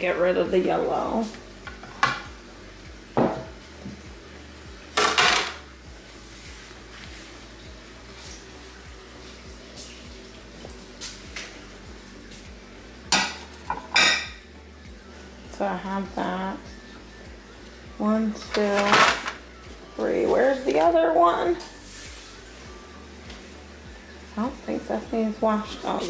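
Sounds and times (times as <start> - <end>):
ceramic plates clinking: 13.1 - 14.4.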